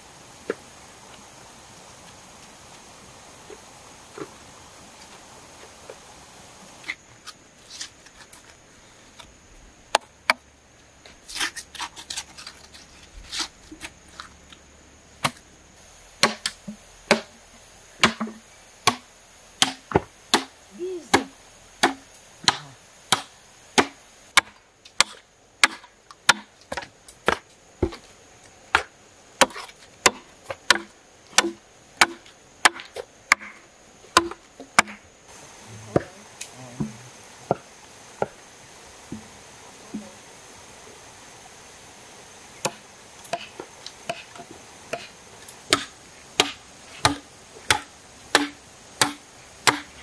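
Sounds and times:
machete chopping bamboo: 15.2 - 15.4, 16.2 - 17.4, 18.0 - 28.0, 28.7 - 33.6, 34.2 - 35.0, 42.6 - 50.0.

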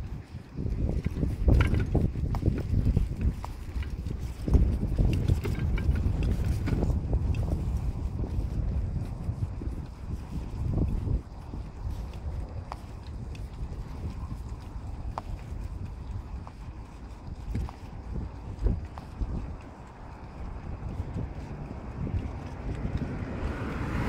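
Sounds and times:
bicycle rolling over brick paving: 0.0 - 24.0
wind buffeting microphone: 0.0 - 24.0
knocks and clicks from bumps: 1.0 - 2.7.

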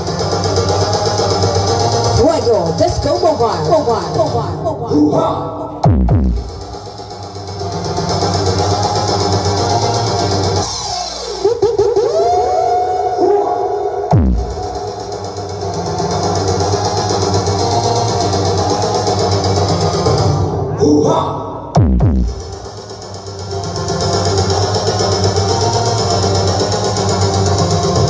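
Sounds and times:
loud electronic dance music: 0.0 - 28.0.

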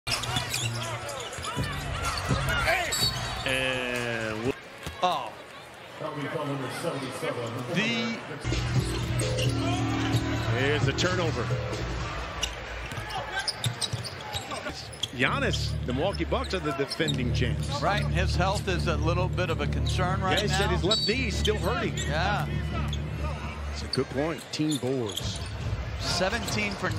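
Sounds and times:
sneakers squeaking: 0.1 - 3.5, 8.4 - 15.2, 20.3 - 25.8
arena background noise: 0.1 - 26.9.

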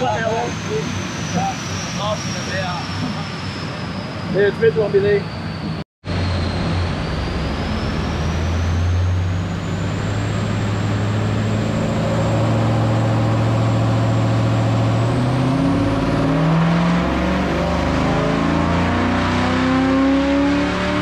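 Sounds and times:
high-pitched whine: 0.0 - 21.0
car engine revving on dyno: 6.1 - 21.0.

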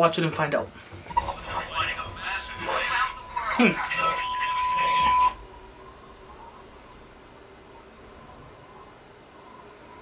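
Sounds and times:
high electronic beep tone: 3.9 - 5.4.

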